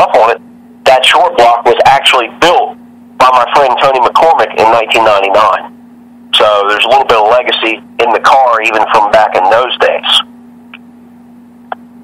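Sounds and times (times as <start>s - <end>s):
man speaking: 0.0s - 5.7s, 6.3s - 10.2s
phone line hum: 0.0s - 12.0s.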